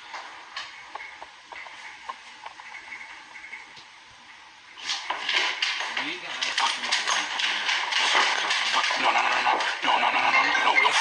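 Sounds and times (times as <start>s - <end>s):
rustling clattering noise: 4.7s - 9.9s
person talking indistinctly: 8.8s - 11.0s.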